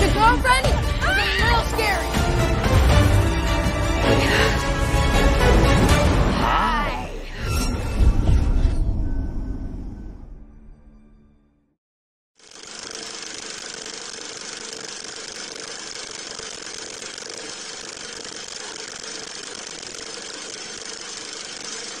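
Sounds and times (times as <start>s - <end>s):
film projector whirring: 12.4s - 22.0s.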